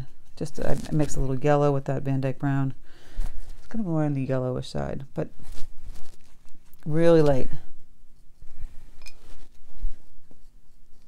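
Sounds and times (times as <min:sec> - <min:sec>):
paintbrush scratching on paper: 0:09.2 - 0:11.0.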